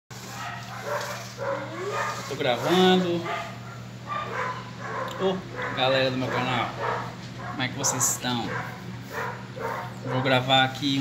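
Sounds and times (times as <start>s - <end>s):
steady low hum: 0.1s - 11.0s
dog whining: 0.9s - 2.4s.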